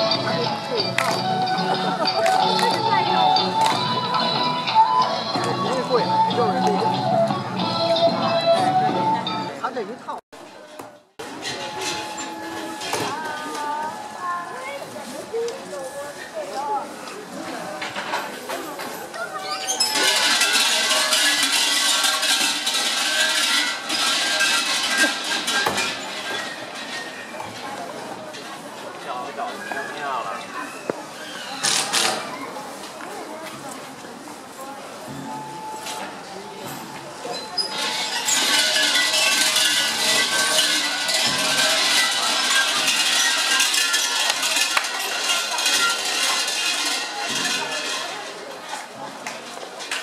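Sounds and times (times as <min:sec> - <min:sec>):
large brass bell jangling: 0:37.7 - 0:48.3.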